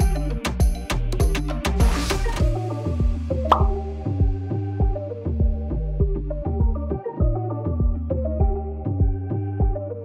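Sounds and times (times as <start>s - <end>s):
background music with bass and beat: 0.0s - 10.0s
short pop: 3.5s - 3.8s.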